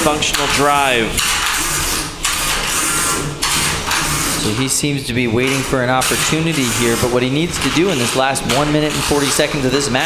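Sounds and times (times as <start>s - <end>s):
harsh hissing rasp: 0.6s - 4.7s, 5.4s - 10.0s.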